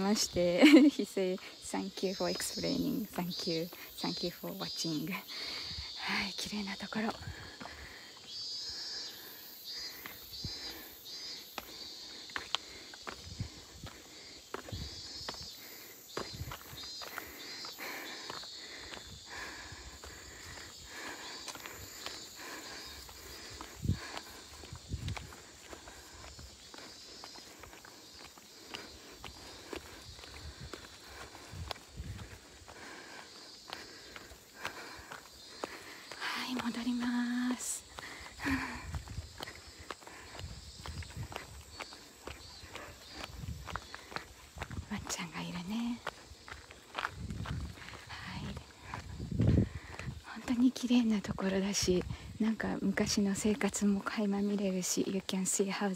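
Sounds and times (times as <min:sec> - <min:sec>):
faint insect chirring: 0:00.0 - 0:55.9
footsteps walking outdoors: 0:00.0 - 0:55.9.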